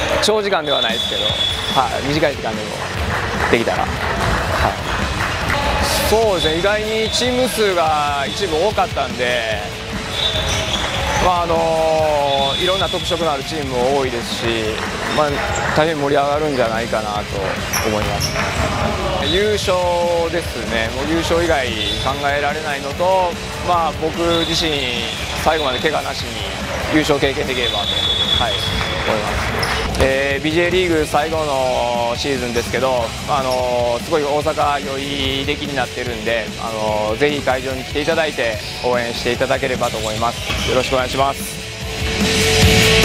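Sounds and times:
background music: 0.0 - 43.0
man speaking: 0.2 - 2.8, 5.8 - 9.8, 11.1 - 18.4, 19.1 - 41.6.

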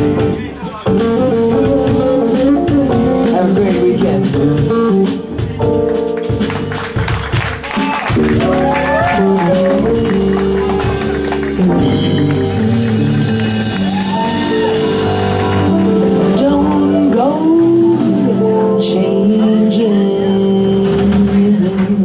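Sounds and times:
jazz band playing: 0.0 - 22.0.

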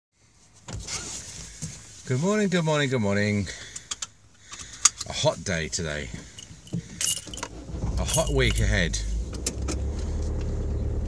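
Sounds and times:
faint rustle: 0.2 - 2.6.

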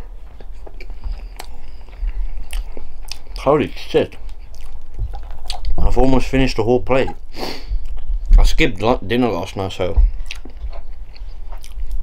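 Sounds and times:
wet chewing mouth sounds: 0.0 - 3.4, 4.1 - 5.9, 10.0 - 12.0
low hum: 0.0 - 12.0.

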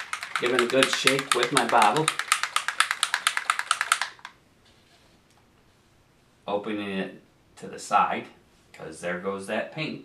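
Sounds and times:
paint bottle rattling: 0.0 - 4.4.

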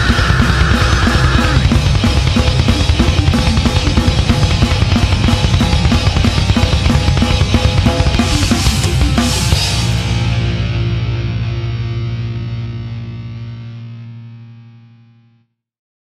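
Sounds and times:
drums: 0.0 - 14.3
heavy metal band final chord: 0.0 - 14.9.

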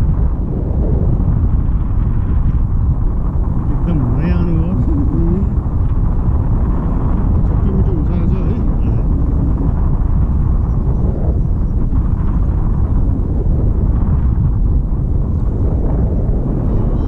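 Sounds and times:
wind rushing over microphone: 0.0 - 17.0
person's voice: 3.7 - 5.6, 7.1 - 9.7.

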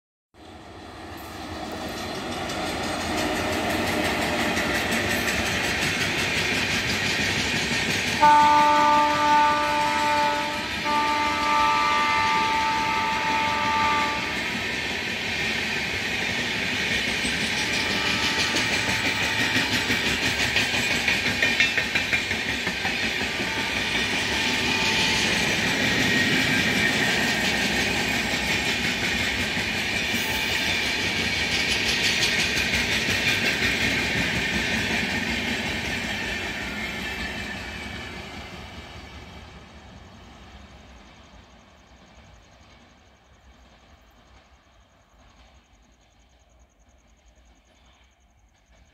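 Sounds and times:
train wheels clacking over rail joints: 1.4 - 39.4
train horn: 8.2 - 14.6, 17.6 - 20.1, 23.2 - 27.2.

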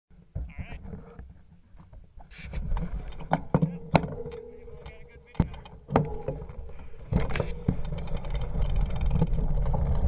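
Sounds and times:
low rumbling thumps: 2.6 - 10.0.

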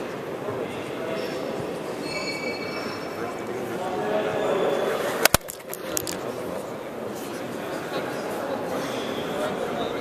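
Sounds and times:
high squeal: 2.0 - 3.1
camera handling clicks: 5.2 - 6.2.

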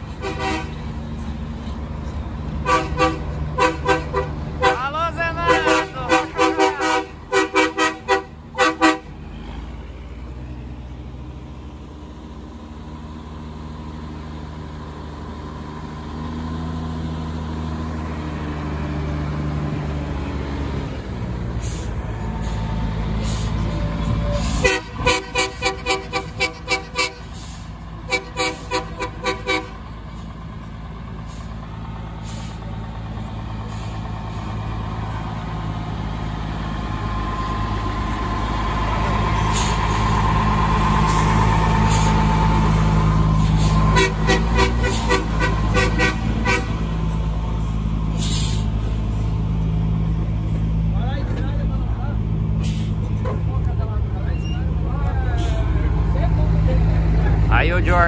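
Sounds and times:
diesel truck engine running: 0.0 - 58.0
truck horn short toots: 0.2 - 0.8, 2.6 - 4.9, 5.5 - 9.1, 24.4 - 27.3, 28.1 - 29.8, 43.9 - 46.9.

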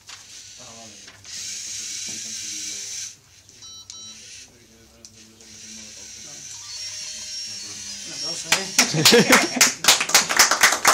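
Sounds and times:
robot servo motors whirring: 0.2 - 3.5, 4.2 - 9.6.

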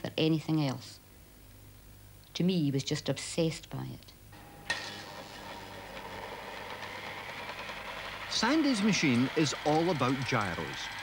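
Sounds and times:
electric drill running: 4.4 - 11.0.

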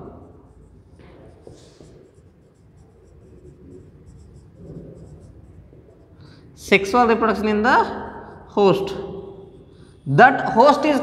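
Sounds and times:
marker scratching on whiteboard: 0.0 - 10.1.

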